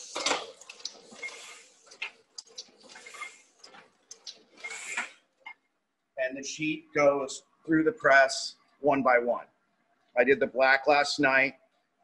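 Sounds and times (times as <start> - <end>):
printing press hiss: 1.1 - 2.1, 4.4 - 5.2.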